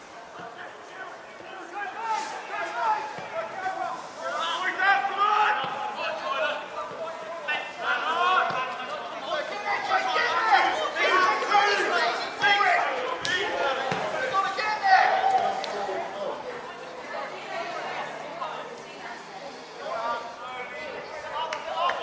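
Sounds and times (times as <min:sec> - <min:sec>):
people talking and calling out: 0:00.0 - 0:22.0.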